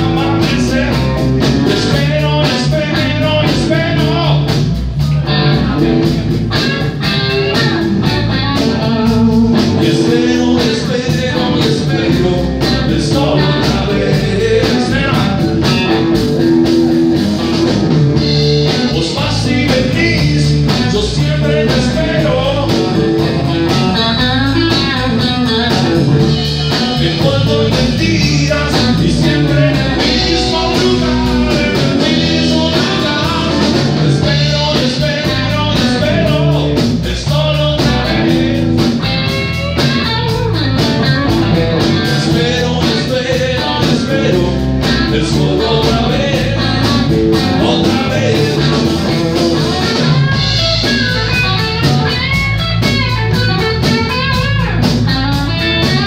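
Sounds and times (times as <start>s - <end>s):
man singing: 0.0s - 6.0s, 8.6s - 16.2s, 18.2s - 40.0s, 41.4s - 52.2s
drum kit: 0.0s - 56.0s
electric bass: 0.0s - 56.0s
electric guitar: 0.0s - 56.0s.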